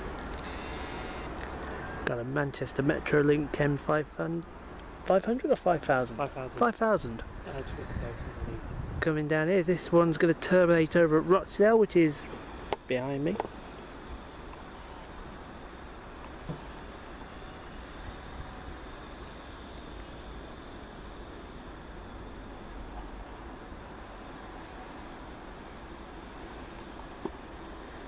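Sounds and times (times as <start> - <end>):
tram running on track: 0.0 - 0.5
outdoor background noise: 0.0 - 28.0.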